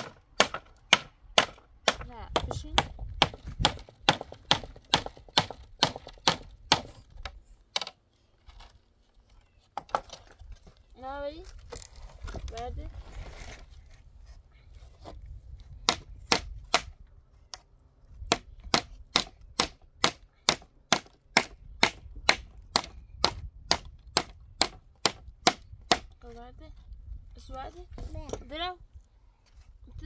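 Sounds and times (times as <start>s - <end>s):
hammer striking wooden pallet: 0.0s - 7.0s, 15.8s - 16.9s, 18.3s - 26.1s.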